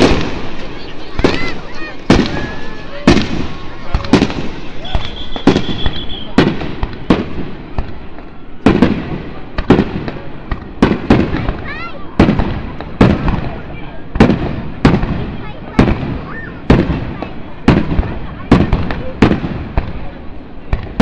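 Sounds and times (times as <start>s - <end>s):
firework shells bursting with rumble: 0.0s - 11.6s.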